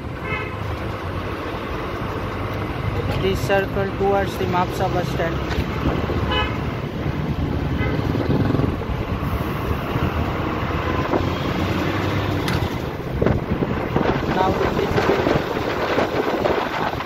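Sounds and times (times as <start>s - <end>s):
bus engine running: 0.0s - 17.0s
road noise: 0.0s - 17.0s
vehicle horn toot: 6.3s - 6.6s.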